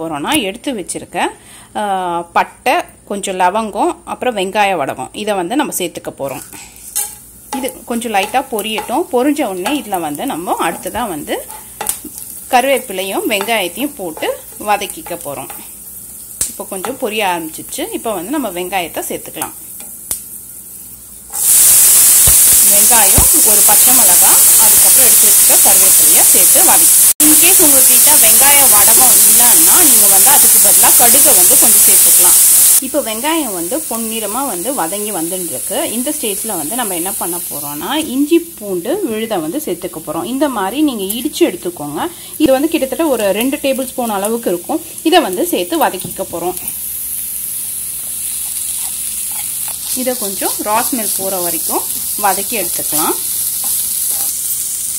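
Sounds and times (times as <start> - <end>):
woman talking: 0.0 - 6.5, 7.6 - 11.5, 12.5 - 15.6, 16.5 - 19.6, 22.7 - 46.7, 49.9 - 53.2
onions sizzling in hot oil: 6.2 - 54.9.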